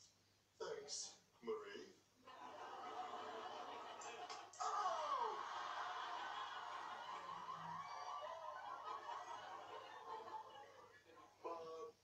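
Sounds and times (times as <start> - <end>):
studio audience laughing: 2.3 - 11.4.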